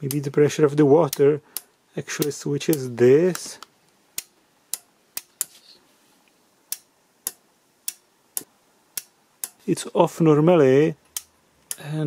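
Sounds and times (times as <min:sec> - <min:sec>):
snap switch clicking: 0:06.7 - 0:09.6, 0:11.1 - 0:11.8.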